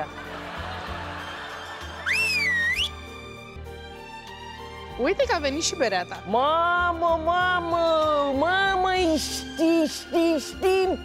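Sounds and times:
quiet background music: 0.0s - 11.0s
loud finger whistle: 2.0s - 3.0s.

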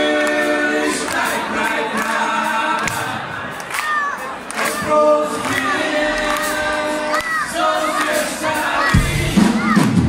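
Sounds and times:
men singing: 0.0s - 3.7s, 4.6s - 9.8s
audience singing along: 0.0s - 10.0s.

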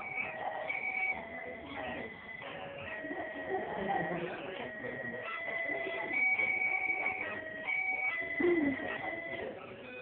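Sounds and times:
electronic toy tune: 2.4s - 10.0s.

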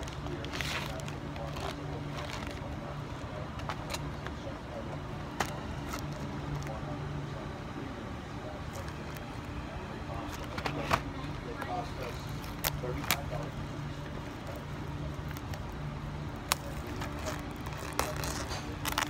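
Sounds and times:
steady low hum: 0.0s - 19.0s
plastic bag crinkling: 16.5s - 19.0s.

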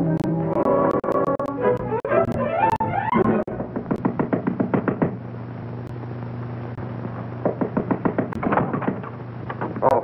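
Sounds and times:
steady low hum: 0.0s - 10.0s
rapid knocking on door: 3.6s - 5.2s, 7.4s - 9.1s.

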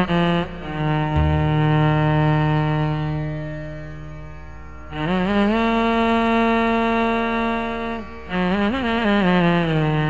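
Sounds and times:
violin playing slow phrase: 1.2s - 3.3s.

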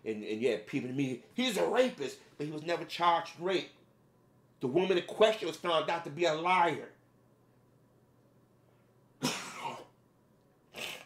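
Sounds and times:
man coughing: 9.2s - 10.0s.

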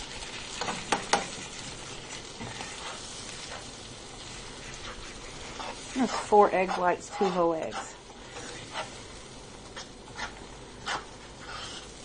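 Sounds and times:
eggs sizzling in a frying pan: 0.0s - 12.0s.

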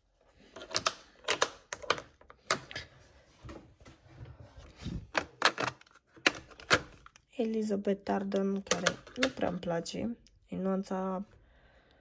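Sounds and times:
plastic compacts clacking: 0.5s - 2.9s, 5.1s - 7.3s, 8.1s - 9.7s.

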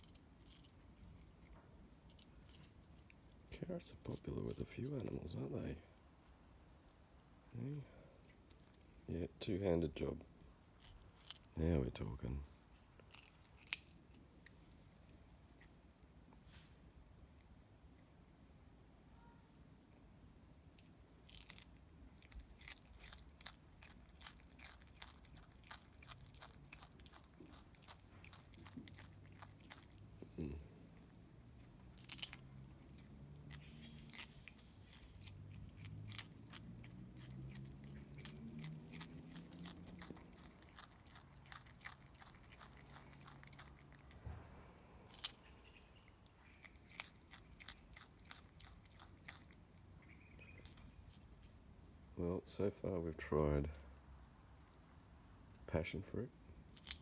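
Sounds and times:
animal crunching carrot: 0.0s - 5.9s, 8.1s - 15.9s, 20.7s - 57.0s.

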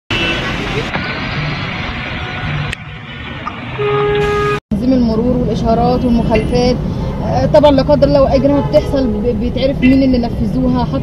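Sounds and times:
car horn: 0.1s - 0.6s, 3.8s - 4.6s
road traffic noise: 0.1s - 11.0s.

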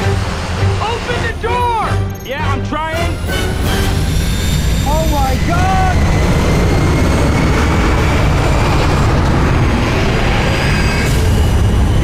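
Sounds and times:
turboprop engines roaring: 0.0s - 12.0s
rushing air: 3.0s - 12.0s.

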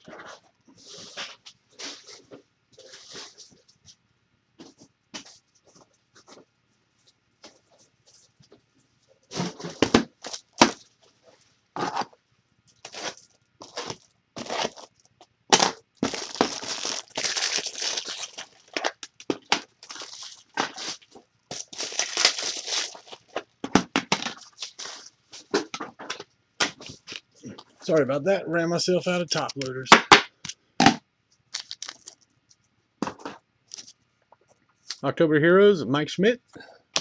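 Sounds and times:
packaging crinkling and tearing: 9.8s - 10.9s, 12.8s - 23.5s, 24.1s - 25.1s, 31.5s - 32.2s.

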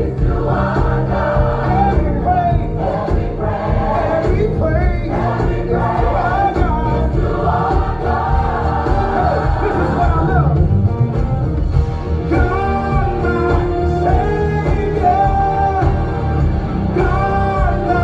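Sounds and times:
bass and chord accompaniment: 0.0s - 18.0s
gospel choir singing: 0.0s - 18.0s.

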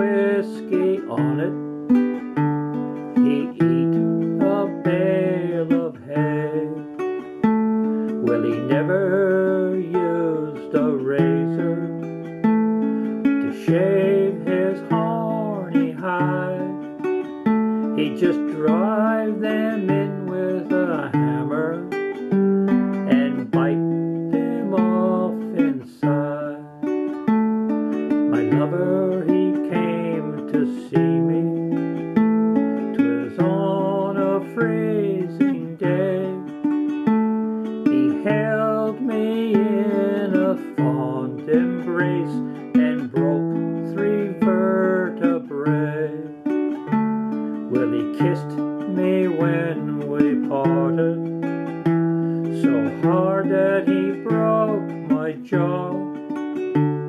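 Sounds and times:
man singing: 0.0s - 27.2s, 28.2s - 32.2s, 32.8s - 57.0s
ukulele strumming: 0.0s - 57.0s.

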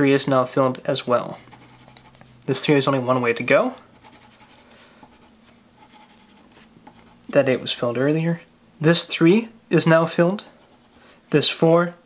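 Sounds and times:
pencil scratching on paper: 1.4s - 7.2s, 10.5s - 11.1s.

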